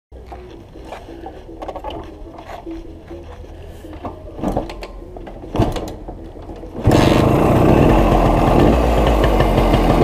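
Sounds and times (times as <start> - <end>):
motorcycle engine idling: 6.7 - 10.0.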